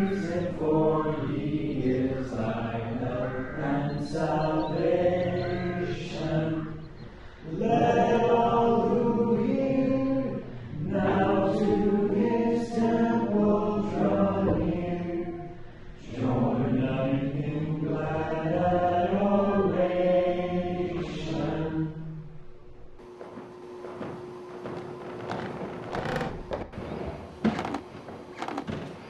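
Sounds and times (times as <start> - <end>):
congregation singing a hymn: 0.0 - 22.4.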